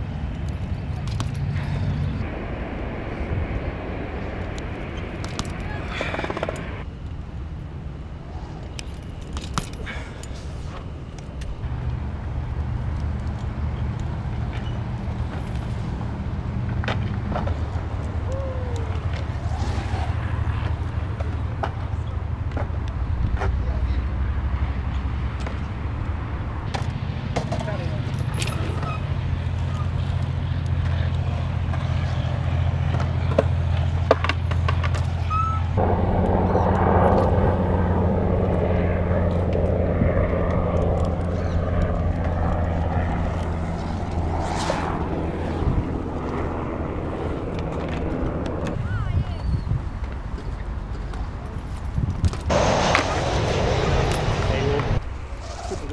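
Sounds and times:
wind rumble on microphone: 0:00.0 - 0:09.3, 0:11.5 - 0:55.9
bike tyres rolling on concrete: 0:08.5 - 0:35.8, 0:40.4 - 0:55.9.

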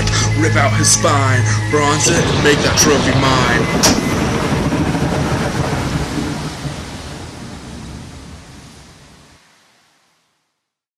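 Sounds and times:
dense noisy rumble with hiss: 0:00.0 - 0:10.0.

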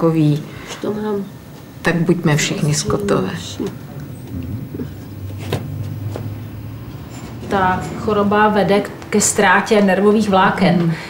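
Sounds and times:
low steady motor hum: 0:00.8 - 0:10.7.

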